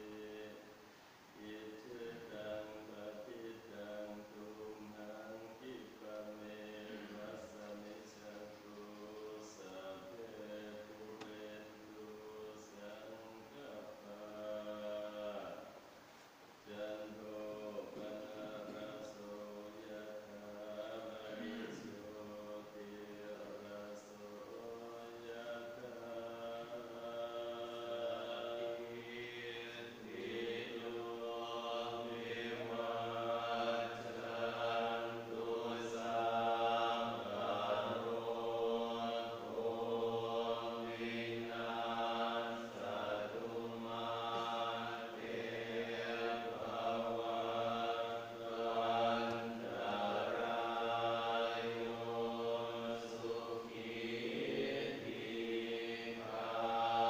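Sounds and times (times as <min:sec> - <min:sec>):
monks chanting in unison: 0:00.0 - 0:15.9, 0:16.6 - 0:57.0.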